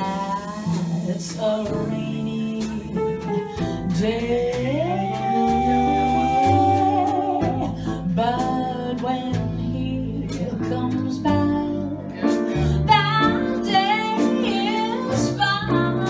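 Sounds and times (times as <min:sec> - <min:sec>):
piano chords: 0:00.0 - 0:16.0
walking upright bass: 0:00.0 - 0:16.0
woman singing slow ballad: 0:00.0 - 0:16.0.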